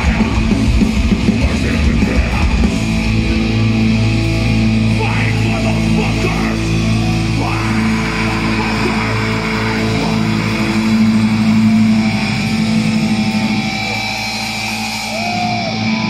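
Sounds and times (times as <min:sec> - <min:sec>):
distorted electric guitars: 0:00.0 - 0:16.0
drums: 0:00.0 - 0:16.0
thrash metal band playing live: 0:00.0 - 0:16.0.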